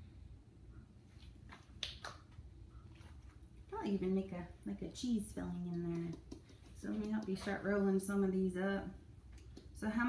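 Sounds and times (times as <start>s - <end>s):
low room hum: 0.0s - 10.0s
hands working dough: 5.0s - 8.3s, 9.1s - 10.0s.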